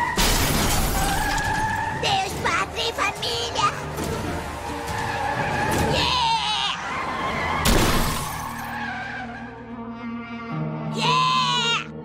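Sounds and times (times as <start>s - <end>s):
tyres screeching: 0.0s - 9.6s.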